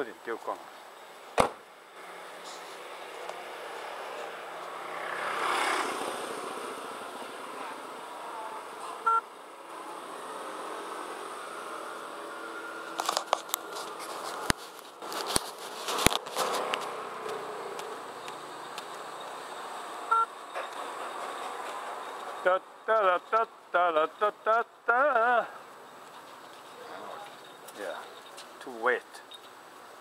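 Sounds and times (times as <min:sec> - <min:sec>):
street traffic: 0:00.0 - 0:30.0.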